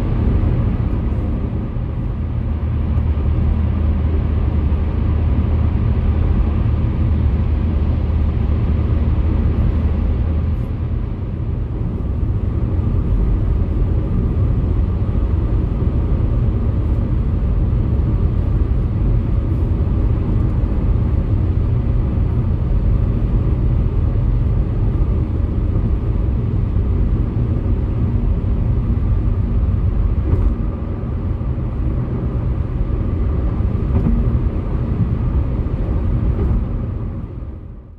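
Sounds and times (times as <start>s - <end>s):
low rumble: 0.0s - 37.9s
tyre and road noise: 0.0s - 37.9s.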